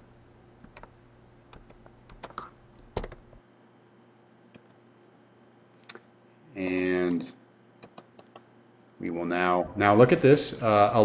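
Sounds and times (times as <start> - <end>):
keyboard keystrokes: 1.5 - 3.2.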